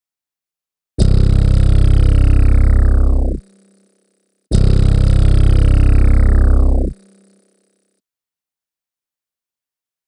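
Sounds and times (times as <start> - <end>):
deep synth bass note: 1.0 - 3.6, 4.5 - 7.4.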